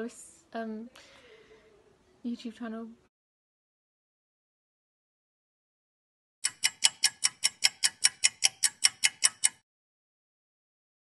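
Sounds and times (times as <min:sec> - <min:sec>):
fast clock ticking: 0:06.4 - 0:09.6.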